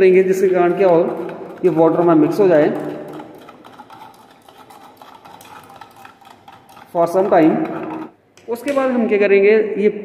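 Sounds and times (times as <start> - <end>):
scraping and clinking against metal: 0.2 - 8.2.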